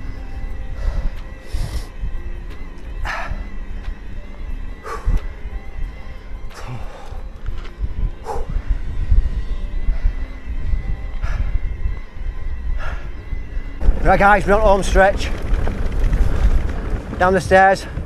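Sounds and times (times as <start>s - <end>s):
wind on microphone: 7.4s - 18.0s
bike tyres on trail: 13.8s - 18.0s.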